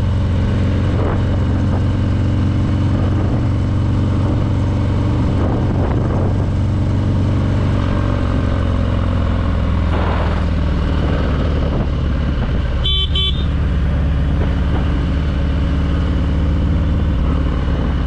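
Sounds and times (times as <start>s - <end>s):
motorcycle engine cruising: 0.0s - 18.0s.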